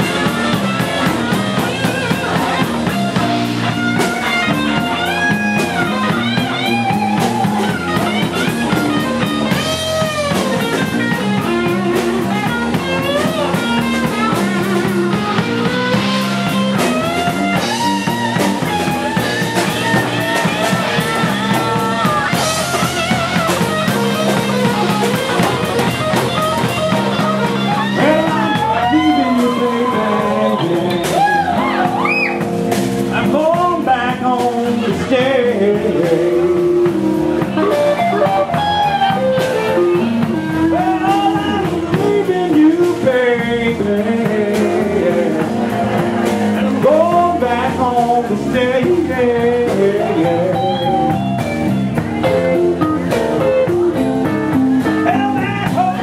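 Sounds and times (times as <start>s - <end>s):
bass: 0.0s - 56.0s
drums: 0.0s - 56.0s
electric guitar lead: 0.0s - 56.0s.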